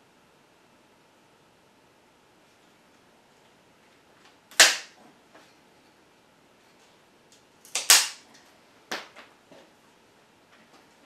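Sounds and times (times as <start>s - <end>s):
cutters snapping branch: 4.5s - 5.0s, 7.7s - 8.2s.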